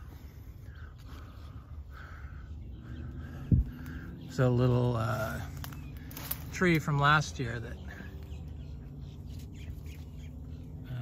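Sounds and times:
distant bird calling: 0.0s - 11.0s.

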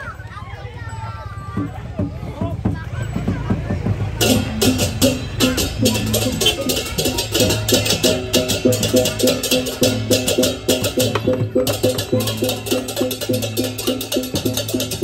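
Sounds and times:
metallophone notes: 0.9s - 15.0s
fast clashing cymbals: 2.8s - 15.0s.

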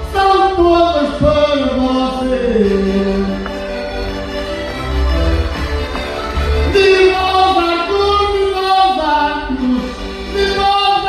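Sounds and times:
light instrumental accompaniment: 0.0s - 11.0s.

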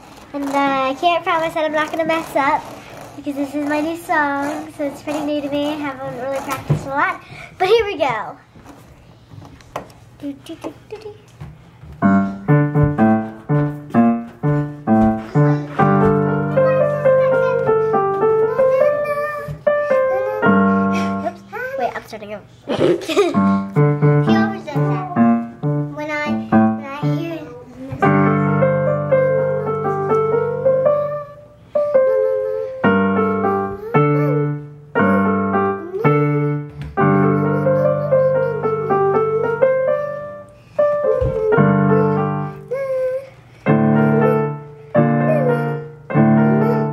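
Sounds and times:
electronic keyboard piano: 12.0s - 21.5s, 23.4s - 42.8s, 43.7s - 46.9s.

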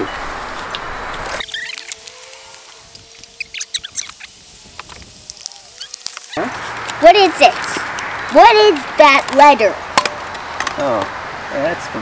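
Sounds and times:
small sharp crackles: 0.7s - 9.4s
packaging rustling and crinkling: 1.4s - 7.0s.

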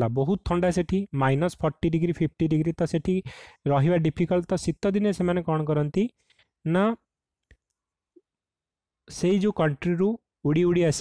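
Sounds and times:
man speaking: 0.0s - 7.1s, 9.1s - 11.0s.

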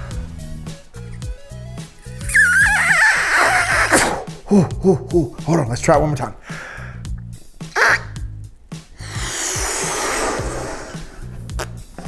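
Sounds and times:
background music: 0.0s - 12.0s
breath blown into balloon: 1.0s - 4.7s, 7.8s - 11.8s.

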